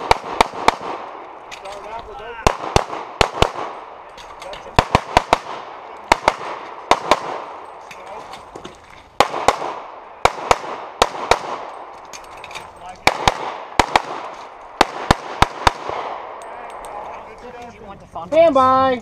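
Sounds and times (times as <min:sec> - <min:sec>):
handgun shots echoing: 0:09.2 - 0:16.9.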